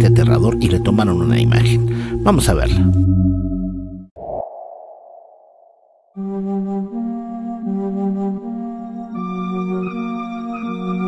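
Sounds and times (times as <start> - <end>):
dark sustained music chord: 0.0 - 4.0.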